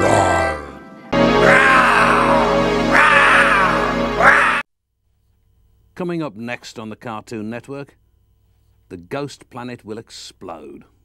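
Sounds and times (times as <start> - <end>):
cartoon jingle music: 0.9 - 4.6.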